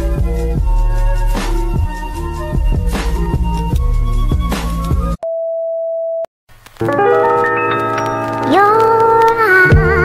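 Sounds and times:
music with steady beat: 0.0 - 5.2.

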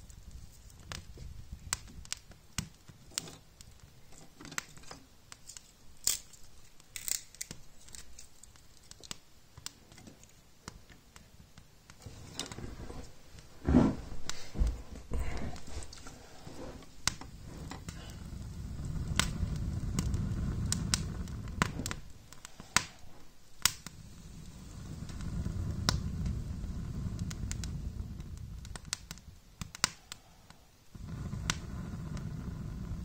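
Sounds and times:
wood fire crackling and popping: 0.0 - 33.0
low rushing rumble: 16.5 - 22.1, 24.0 - 29.0.

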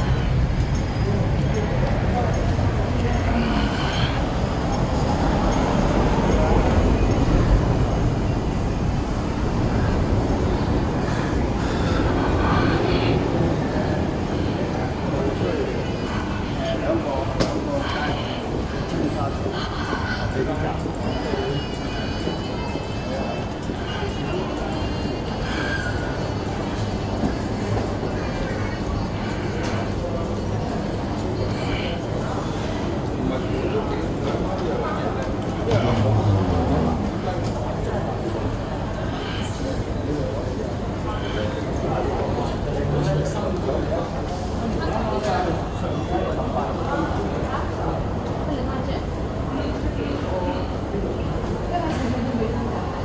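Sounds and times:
indistinct voices: 0.0 - 53.0.

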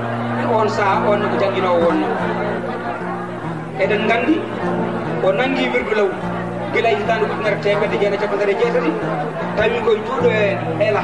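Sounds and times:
held background notes: 0.0 - 11.0
man speaking over loudspeaker: 0.4 - 2.7, 3.8 - 11.0.

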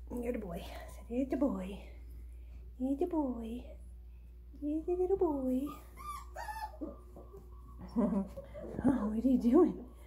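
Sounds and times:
puppy whimpering squeaks: 5.6 - 8.0.

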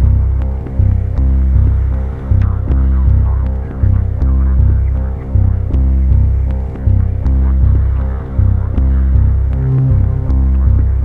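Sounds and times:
pulsing synth bass line: 0.0 - 11.0.

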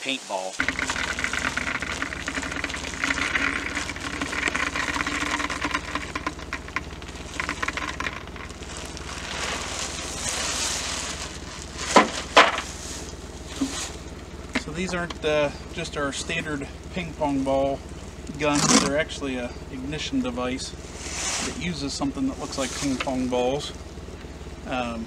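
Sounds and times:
plastic bag rustling: 0.1 - 15.1, 20.8 - 23.7
plastic spheres rattling and clattering: 0.6 - 17.7, 18.3 - 19.3.

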